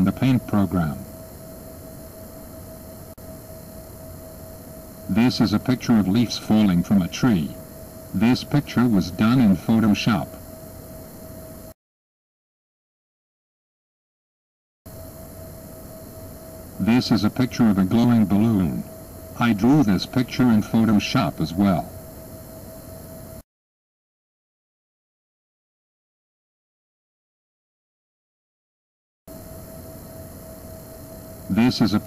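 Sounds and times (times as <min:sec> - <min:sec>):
person speaking: 0:00.0 - 0:01.1, 0:05.1 - 0:10.4, 0:16.8 - 0:21.9, 0:31.5 - 0:32.0
background hiss: 0:00.0 - 0:11.7, 0:14.9 - 0:23.4, 0:29.4 - 0:32.0
faint steady hum: 0:00.0 - 0:11.8, 0:14.9 - 0:23.4, 0:29.3 - 0:32.0.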